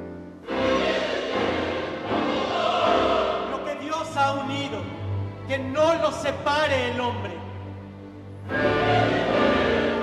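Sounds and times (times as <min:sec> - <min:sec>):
choir singing with orchestra: 0:00.1 - 0:05.4, 0:07.2 - 0:10.0.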